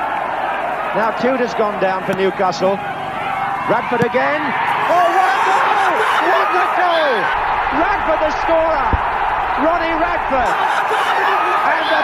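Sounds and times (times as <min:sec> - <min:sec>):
stadium crowd cheering: 0:00.0 - 0:12.0
excited commentator's voice: 0:00.9 - 0:02.8, 0:03.7 - 0:09.0, 0:09.6 - 0:12.0.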